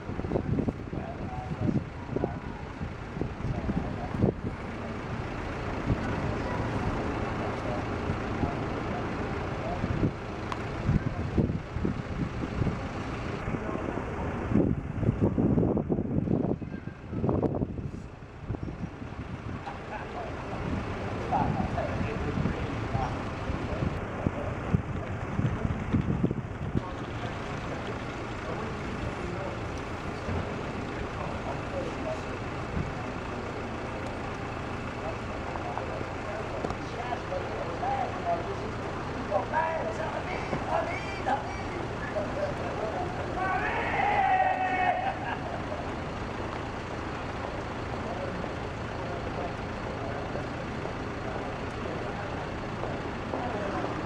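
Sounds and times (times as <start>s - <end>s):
distant indistinct conversation: 0.0s - 54.0s
vehicle engine rumbling: 0.0s - 54.0s.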